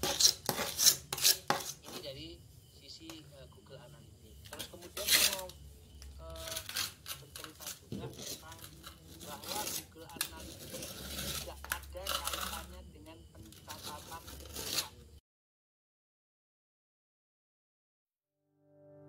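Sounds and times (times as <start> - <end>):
metal spatula scraping mortar: 0.0 - 2.2, 4.4 - 15.1.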